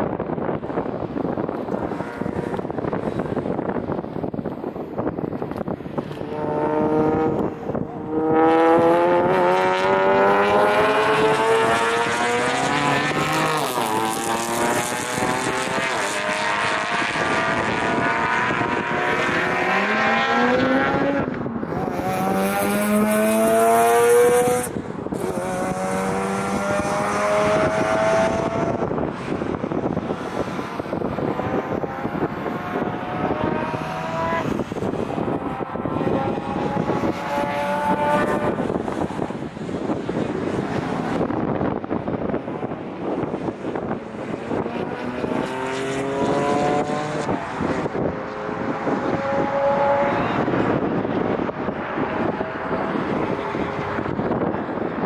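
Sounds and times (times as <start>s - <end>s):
race car engine revving through gears: 5.6s - 54.6s.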